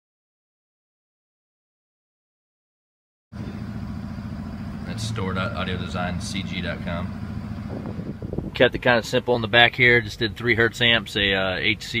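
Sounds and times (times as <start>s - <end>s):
low mechanical drone: 3.4s - 10.3s
man's voice: 4.9s - 7.1s, 8.5s - 12.0s.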